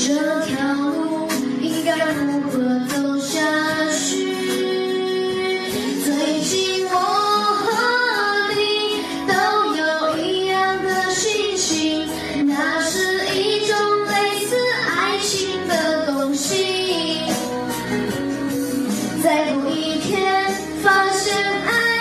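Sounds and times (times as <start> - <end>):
backing music: 0.0 - 22.0.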